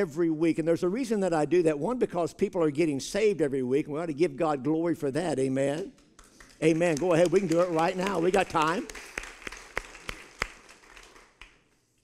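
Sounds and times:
sharp hand claps: 5.7 - 12.0
applause: 5.8 - 12.0.

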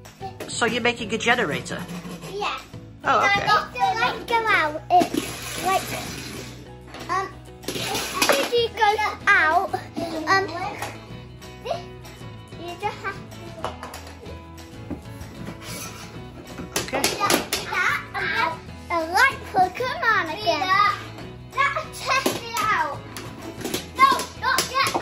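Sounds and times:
young girl's voice: 2.3 - 6.1, 7.1 - 10.9, 12.6 - 13.7, 17.7 - 21.0, 21.6 - 23.0.

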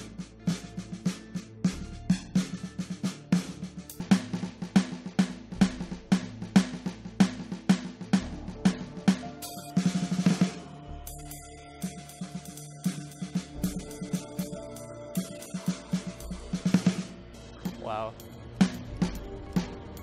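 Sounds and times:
sampled drum kit beat: 0.0 - 20.0.

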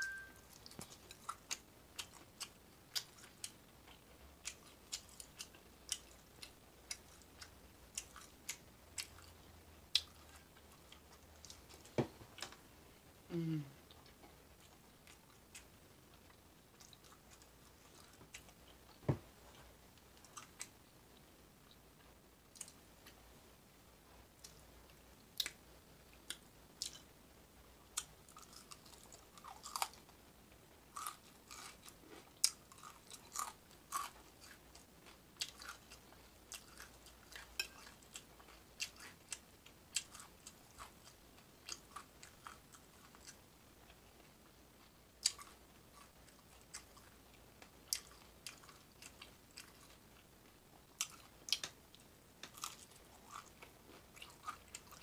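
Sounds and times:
person chewing and crunching food: 0.0 - 12.5, 13.9 - 20.8, 24.4 - 27.1, 27.9 - 30.1, 30.9 - 55.0.

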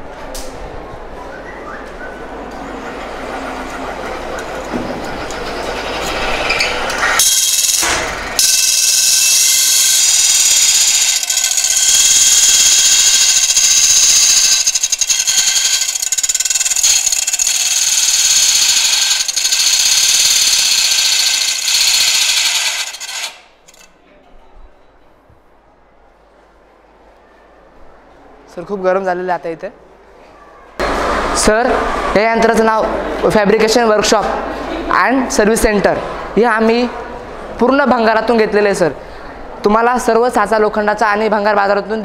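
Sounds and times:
cutting disc grinding metal: 3.9 - 23.9.

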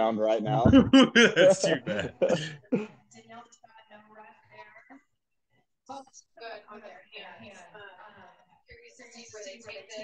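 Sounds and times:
man laughing: 0.5 - 2.9.

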